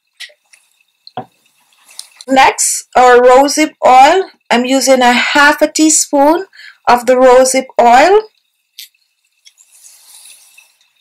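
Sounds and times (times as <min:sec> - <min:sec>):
soft hiss of oil pouring: 0:08.8 - 0:11.0.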